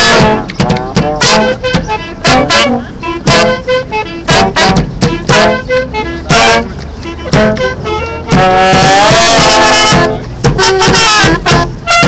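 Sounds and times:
brass band playing: 0:00.0 - 0:12.0.

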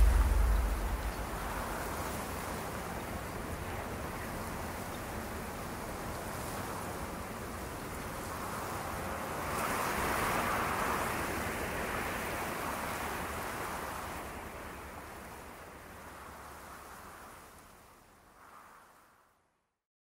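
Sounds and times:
soft steady rushing noise: 0:00.0 - 0:03.8.

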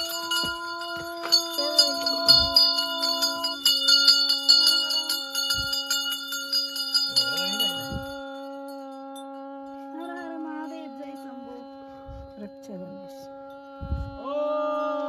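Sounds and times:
hand bells jangling: 0:00.0 - 0:11.8.

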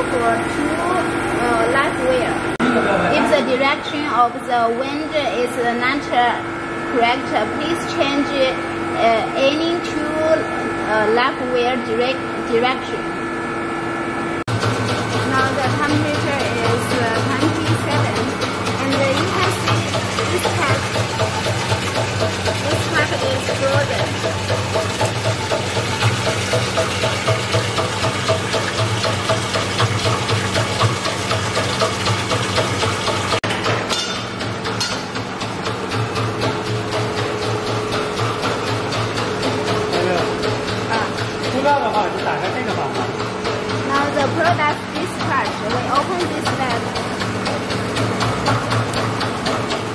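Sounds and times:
machine humming: 0:00.0 - 0:49.9
water splashing into metal tank: 0:17.4 - 0:44.6.

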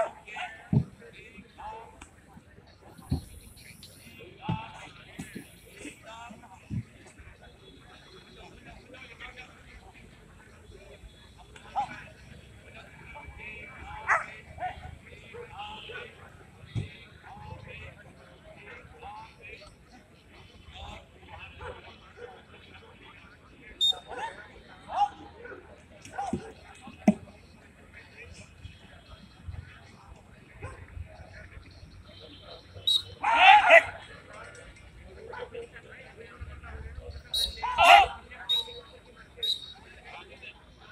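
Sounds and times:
dog barking: 0:30.6 - 0:30.8.

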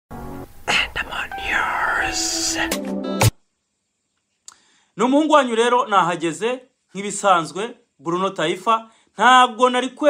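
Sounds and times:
person speaking over music: 0:01.0 - 0:02.8.

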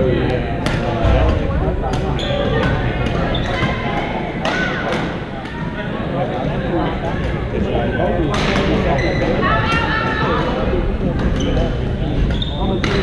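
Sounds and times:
players' voices: 0:00.0 - 0:13.0.

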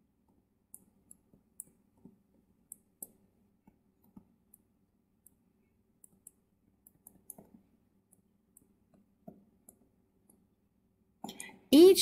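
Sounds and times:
stylus tapping on tablet screen: 0:00.3 - 0:10.5.

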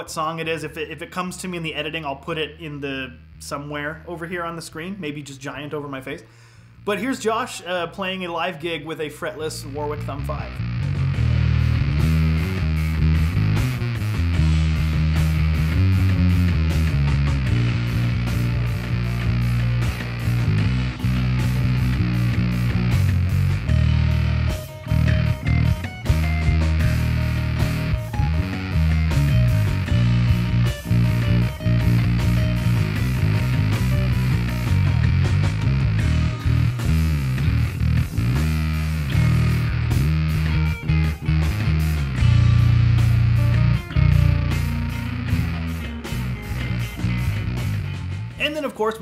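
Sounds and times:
fuzzed bass guitar line: 0:00.0 - 0:49.0.

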